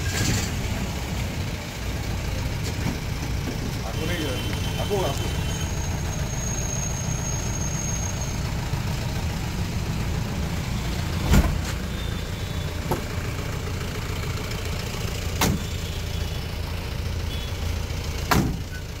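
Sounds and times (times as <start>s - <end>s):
engine idling: 0.0s - 19.0s.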